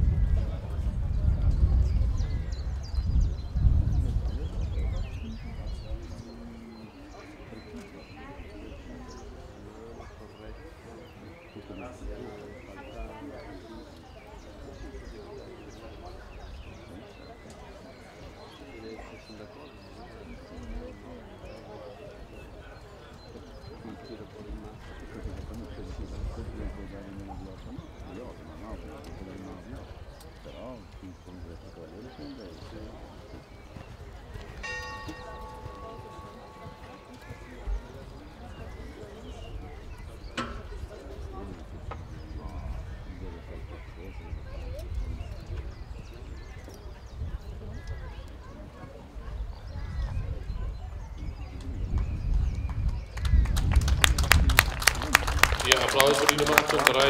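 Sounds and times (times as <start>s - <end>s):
wind rumbling on microphone: 0.0s - 18.5s, 24.2s - 56.8s
faint distant voices: 0.0s - 57.0s
people talking indistinctly: 0.0s - 57.0s.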